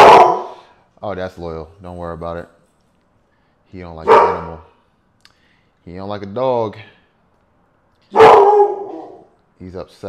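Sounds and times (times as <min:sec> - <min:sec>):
dog barking: 0:00.0 - 0:00.6, 0:04.0 - 0:04.7, 0:08.1 - 0:09.3.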